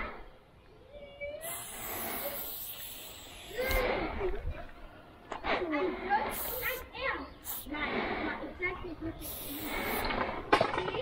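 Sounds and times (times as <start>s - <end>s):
spray-paint can hissing: 1.4s - 4.0s, 6.2s - 8.0s, 9.1s - 10.3s.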